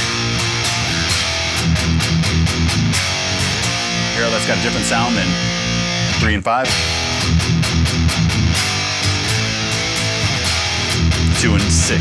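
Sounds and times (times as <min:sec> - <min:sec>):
distorted electric guitar power chords: 0:00.0 - 0:12.0.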